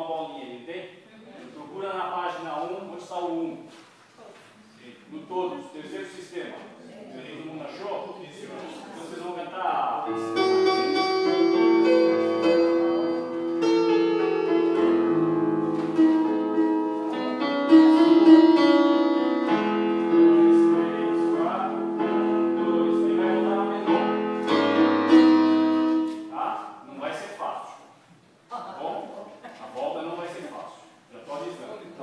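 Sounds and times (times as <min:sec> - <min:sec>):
electronic keyboard chords: 0:10.1 - 0:26.3.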